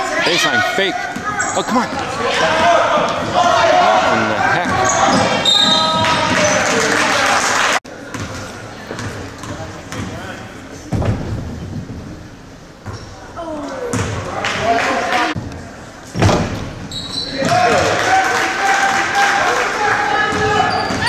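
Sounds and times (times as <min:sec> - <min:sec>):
people shouting: 0:00.0 - 0:07.4.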